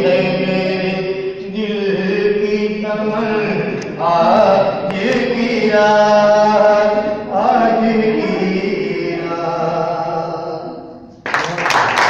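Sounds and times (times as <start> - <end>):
man singing into microphone: 0.0 - 10.8.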